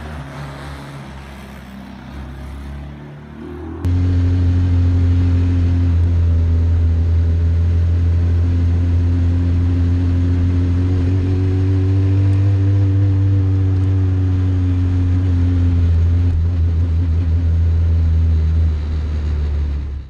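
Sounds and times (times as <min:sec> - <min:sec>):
small car engine running: 0:00.0 - 0:20.0.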